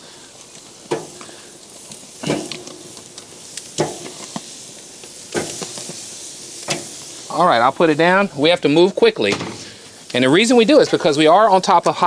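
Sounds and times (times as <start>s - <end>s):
chicken sizzling on charcoal grill: 0.0s - 12.0s.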